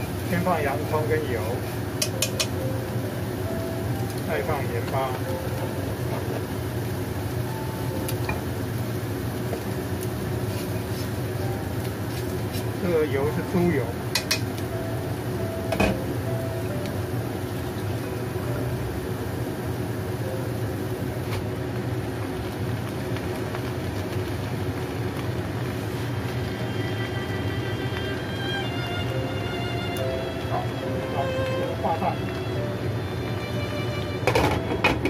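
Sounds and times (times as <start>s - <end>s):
onion sizzling in a wok: 0.0s - 35.0s.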